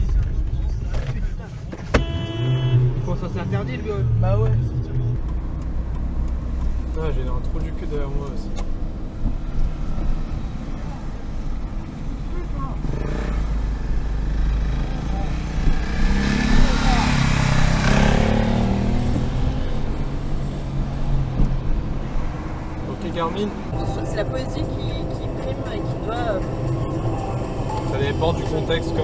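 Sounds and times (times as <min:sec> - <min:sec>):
car engine and tyre noise: 0:00.0 - 0:29.0
vehicle passing: 0:02.4 - 0:29.0.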